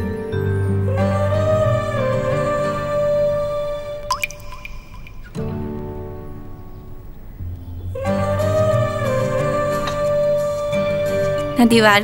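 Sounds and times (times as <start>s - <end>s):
soft background music: 0.0s - 12.0s
water drop plopping into tea: 4.1s - 5.4s.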